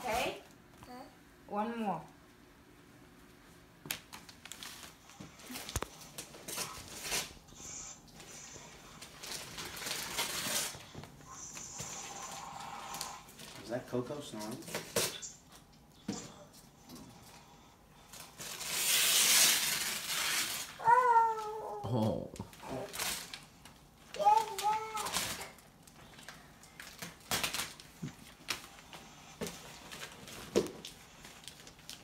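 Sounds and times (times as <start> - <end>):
paper crinkling: 3.9 - 7.4, 9.0 - 10.9, 22.5 - 32.0
wrapping paper tearing: 4.1 - 7.4, 9.0 - 10.8, 18.1 - 21.8, 22.5 - 23.5, 24.1 - 28.8.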